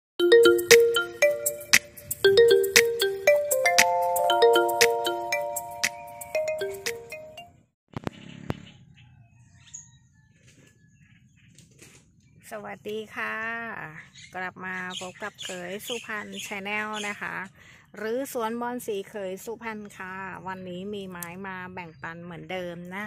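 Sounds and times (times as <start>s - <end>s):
chime-like intro jingle: 0.2s - 7.5s.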